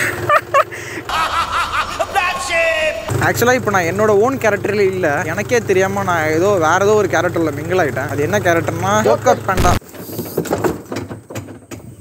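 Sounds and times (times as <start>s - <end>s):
man laughing: 0.0s - 3.2s.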